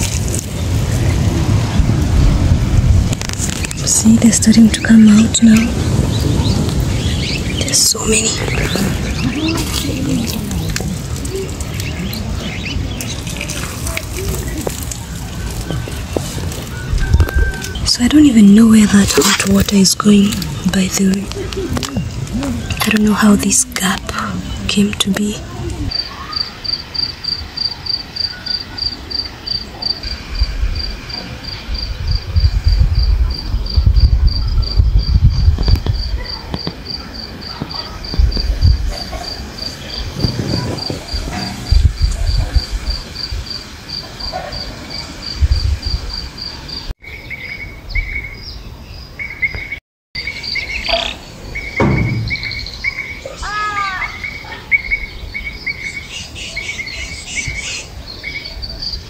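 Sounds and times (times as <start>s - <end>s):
wind gusts on microphone: 0.0s - 49.7s
birds calling: 3.4s - 32.2s, 46.0s - 59.0s
cricket chirping: 25.9s - 47.2s, 50.2s - 53.3s.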